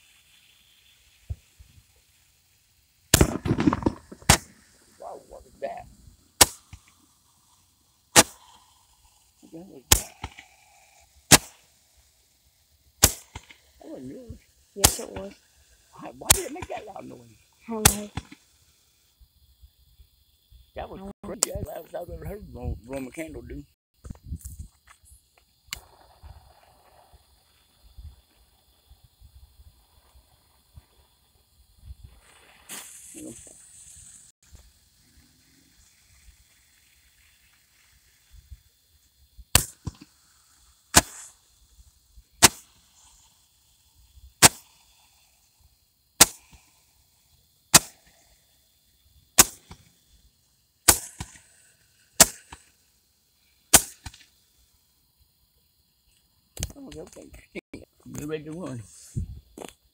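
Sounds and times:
fireworks bangs: 0:00.0 - 0:02.2, 0:03.1 - 0:12.1, 0:13.0 - 0:18.5, 0:25.7 - 0:29.3, 0:31.8 - 0:34.3, 0:39.5 - 0:41.4, 0:42.3 - 0:43.3, 0:44.4 - 0:45.3, 0:46.2 - 0:46.7, 0:47.7 - 0:48.3, 0:49.3 - 0:50.1, 0:50.8 - 0:52.7, 0:53.7 - 0:54.3
brief hiss: 0:00.0 - 0:19.8, 0:24.0 - 0:54.9, 0:56.0 - 0:59.8.

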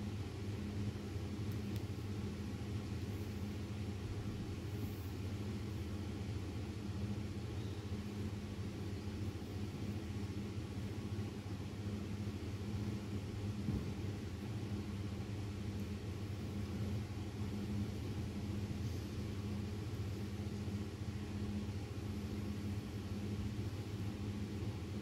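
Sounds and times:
steady low hum: 0:00.0 - 0:25.0
faint hiss: 0:01.4 - 0:11.2, 0:11.8 - 0:25.0.

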